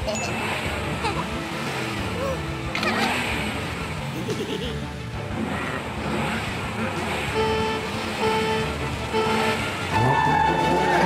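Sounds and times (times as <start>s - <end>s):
cartoon kart engines revving: 0.0s - 11.0s
countdown beeps: 7.3s - 11.0s.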